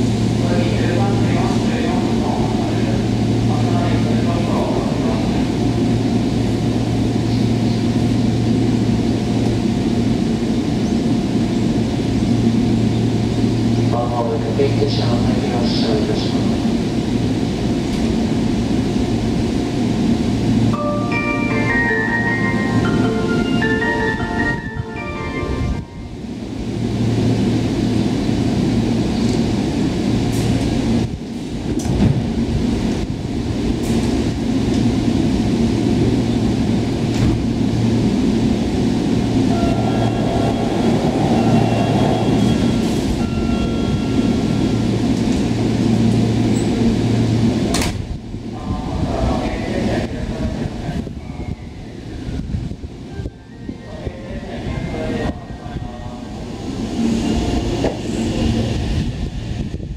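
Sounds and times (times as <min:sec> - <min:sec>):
train equipment low hum: 0:00.0 - 0:59.9
high whine: 0:20.0 - 0:30.4, 0:37.7 - 0:47.6.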